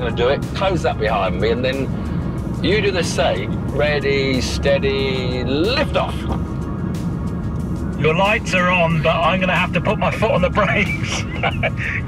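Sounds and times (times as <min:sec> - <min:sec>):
background music: 0:00.0 - 0:12.0
car road and tyre noise: 0:00.0 - 0:12.0.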